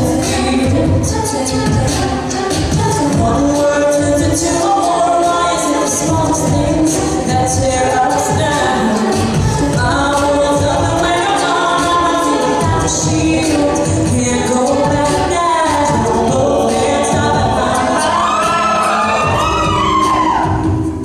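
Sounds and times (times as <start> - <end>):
female lead voice singing: 0.0 - 20.7
backing vocal harmonies: 0.0 - 21.0.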